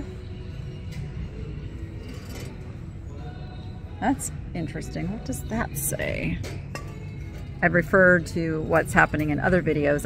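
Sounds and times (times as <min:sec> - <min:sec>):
faint background music: 0:00.0 - 0:10.0
store room noise: 0:00.0 - 0:10.0.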